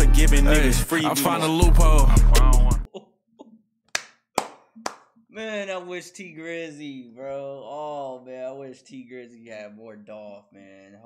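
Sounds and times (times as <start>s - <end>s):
sharp hand claps: 3.9s - 5.2s.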